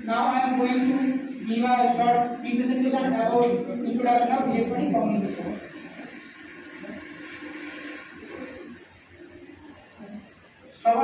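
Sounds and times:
man speaking into a microphone: 0.0s - 5.6s.

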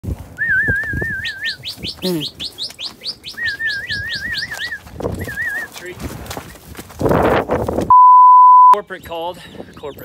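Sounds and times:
bird singing: 1.0s - 5.7s, 8.8s - 10.0s.

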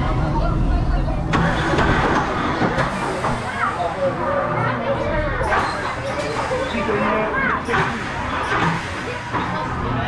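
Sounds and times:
people talking and calling out: 0.0s - 10.0s
roller coaster train rumbling: 0.0s - 10.0s.

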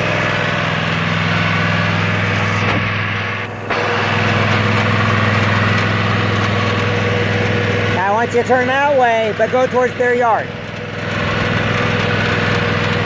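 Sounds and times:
riding lawn mower engine: 0.0s - 13.0s.

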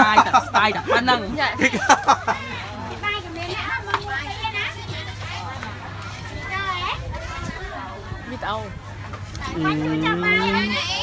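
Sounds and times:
young people talking: 0.0s - 11.0s.

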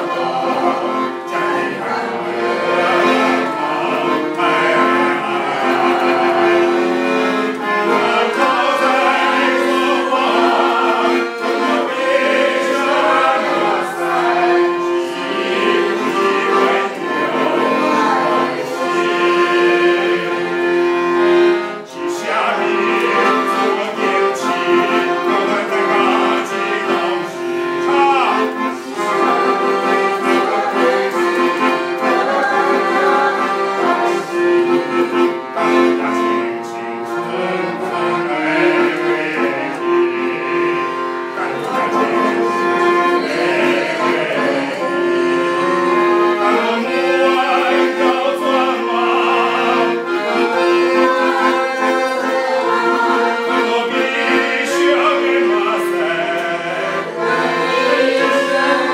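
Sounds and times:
accordion playing melody: 0.0s - 58.9s.

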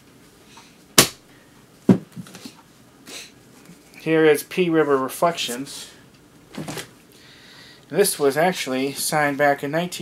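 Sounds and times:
books knocking on a table: 1.9s - 2.3s.

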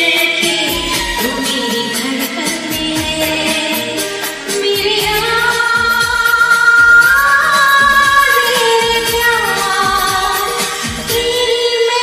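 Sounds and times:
karaoke backing track: 0.0s - 12.0s
woman singing: 0.0s - 12.0s.

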